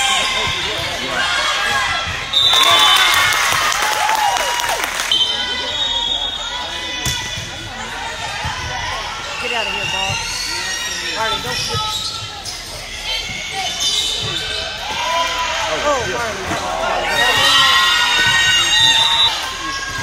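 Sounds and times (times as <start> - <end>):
sneakers squeaking on floor: 8.6 - 15.0.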